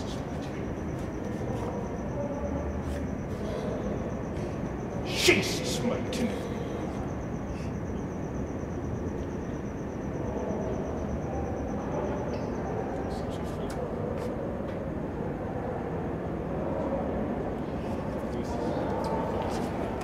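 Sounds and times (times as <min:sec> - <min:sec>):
faint indistinct voices: 0:00.0 - 0:07.7, 0:11.6 - 0:20.0
large hall background noise: 0:00.0 - 0:20.0.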